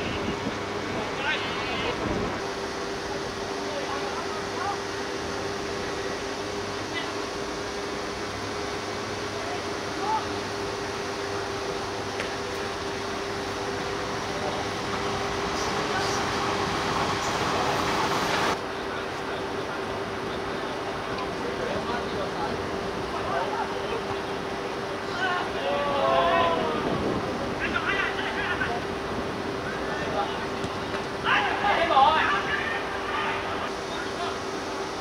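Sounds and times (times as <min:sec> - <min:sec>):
loud rushing noise: 0:00.0 - 0:18.6
players' distant shouts: 0:25.0 - 0:27.0.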